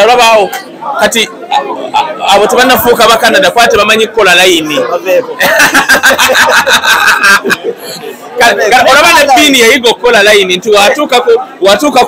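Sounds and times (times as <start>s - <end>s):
man talking loudly into microphone: 0.0s - 5.4s, 8.3s - 12.0s.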